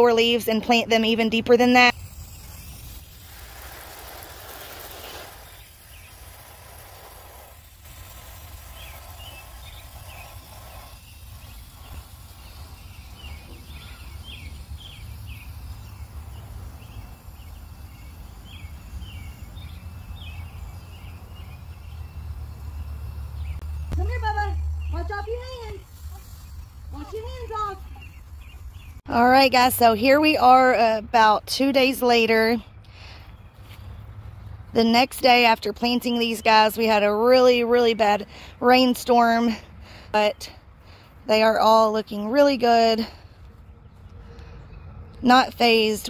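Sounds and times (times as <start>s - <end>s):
garden hose spraying water: 0.0s - 43.5s, 45.1s - 46.0s
bird chirping: 4.6s - 7.3s, 8.1s - 29.7s.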